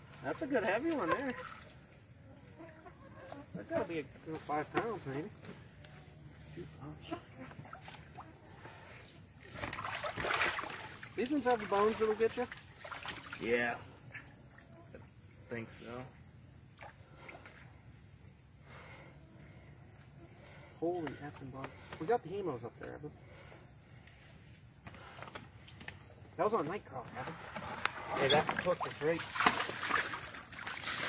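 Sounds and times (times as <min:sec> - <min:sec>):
water sloshing: 0:00.0 - 0:01.9, 0:07.1 - 0:14.8, 0:27.0 - 0:31.0
crickets chirping: 0:00.0 - 0:31.0
fish thrashing and splashing: 0:09.4 - 0:13.4, 0:27.4 - 0:31.0.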